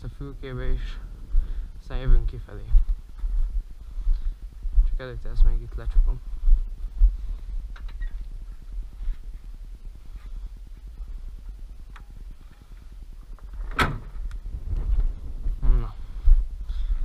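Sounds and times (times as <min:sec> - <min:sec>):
steady low rumble: 0:00.0 - 0:17.0
tractor bonnet banging shut: 0:13.6 - 0:14.2.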